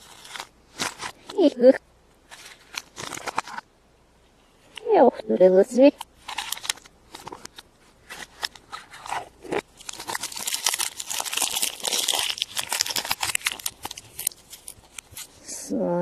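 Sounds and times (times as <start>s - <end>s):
foil wrapper crinkling: 0.0s - 1.5s, 2.2s - 3.7s, 6.0s - 15.4s.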